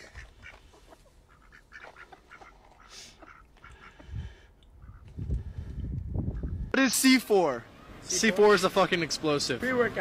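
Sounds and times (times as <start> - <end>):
ducks quacking: 0.0 - 5.2.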